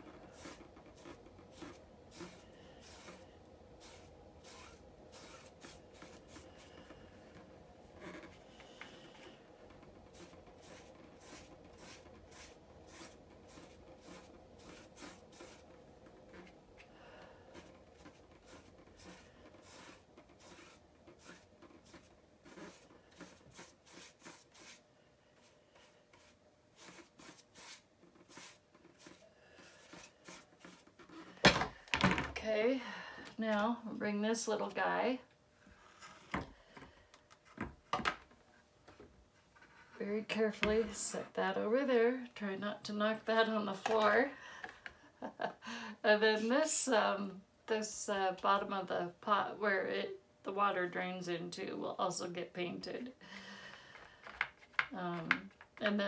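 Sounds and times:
paintbrush scratchy strokes: 0.0 - 7.6, 8.2 - 31.2
faint steady hum: 0.0 - 56.0.

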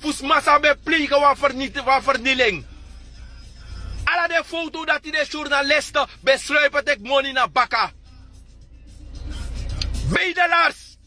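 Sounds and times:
low vehicle rumble: 0.0 - 10.2.

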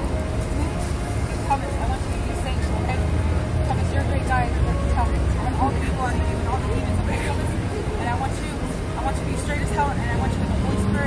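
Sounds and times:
distant voices: 0.0 - 11.0
street traffic rumble: 0.0 - 11.0.

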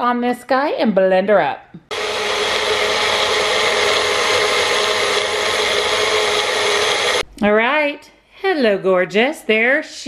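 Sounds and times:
blender running: 1.9 - 7.2.

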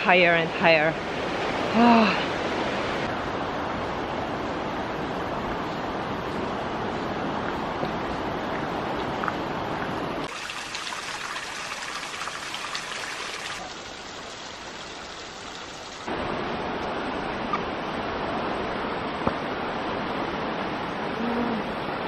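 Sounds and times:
river rushing: 0.0 - 22.0
wind: 0.0 - 22.0.

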